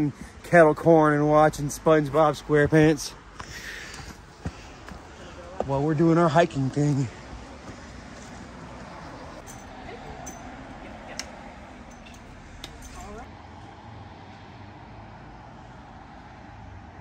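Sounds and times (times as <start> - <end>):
road traffic rumble: 0.0 - 17.0
light metallic clinks: 9.4 - 13.3.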